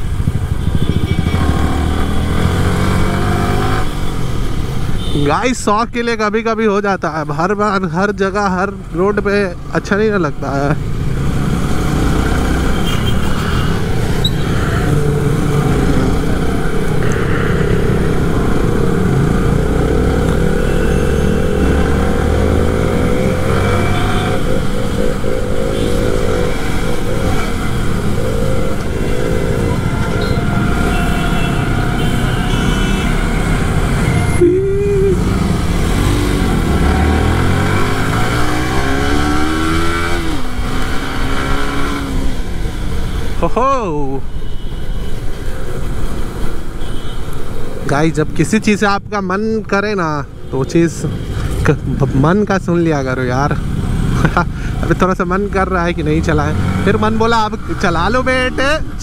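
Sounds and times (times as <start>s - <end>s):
motorcycle engine accelerating: 0.0s - 3.9s, 10.9s - 42.4s.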